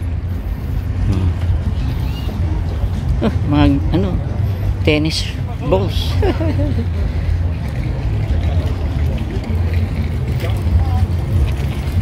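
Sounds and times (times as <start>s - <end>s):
faint distant voices: 0.0s - 12.0s
low outdoor rumble: 0.0s - 12.0s.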